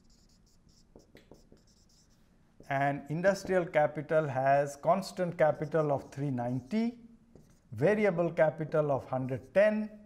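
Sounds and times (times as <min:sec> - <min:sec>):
marker writing on whiteboard: 0:00.0 - 0:03.7, 0:05.0 - 0:09.7.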